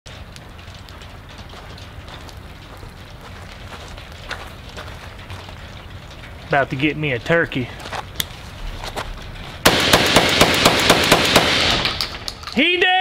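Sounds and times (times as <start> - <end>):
faint crackles and ticks: 0.1 - 9.6, 11.9 - 13.0
steady low rumble: 0.1 - 12.5.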